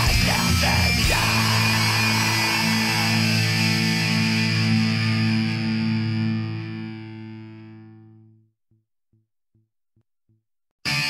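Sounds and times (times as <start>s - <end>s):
distorted electric guitar chord: 0.0s - 8.2s.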